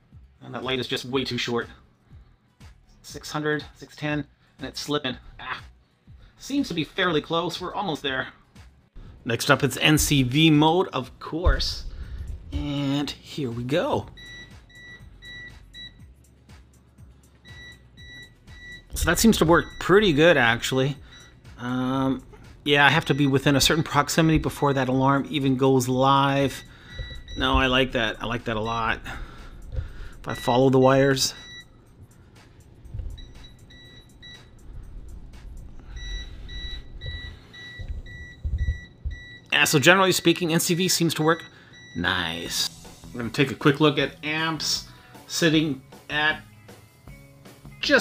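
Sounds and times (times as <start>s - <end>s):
low handling rumble: 11.4s - 12.9s, 26.7s - 39.4s
multimeter alarm beeping rapidly: 14.2s - 16.0s, 17.5s - 21.4s, 22.8s - 31.9s, 33.0s - 34.6s, 35.9s - 40.6s, 41.4s - 42.1s.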